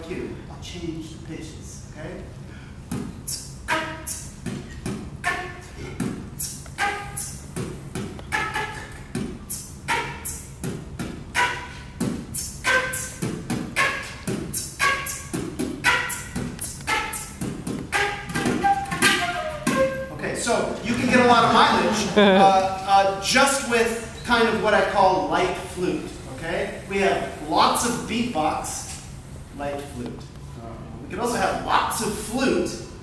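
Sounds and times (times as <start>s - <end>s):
breathy flute: 2.5s - 10.6s, 11.3s - 20.2s
beatboxing kick and snare: 2.8s - 20.0s.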